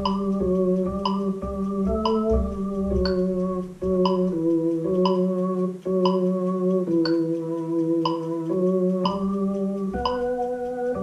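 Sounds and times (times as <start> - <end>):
electronic keyboard melody: 0.0 - 11.0.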